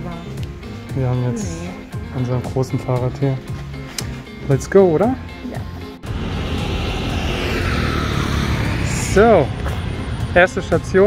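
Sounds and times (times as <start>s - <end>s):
vehicle passing with rumble: 6.0s - 11.0s.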